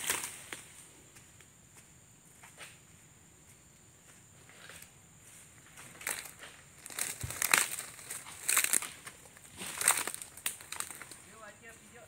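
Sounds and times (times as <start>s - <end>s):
dry fronds crackling and crunching: 0.0s - 0.7s, 5.6s - 12.0s.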